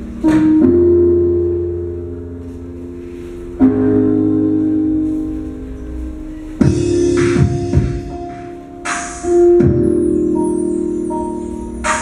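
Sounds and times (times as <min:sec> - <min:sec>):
slow music with sustained chords: 0:00.0 - 0:12.0.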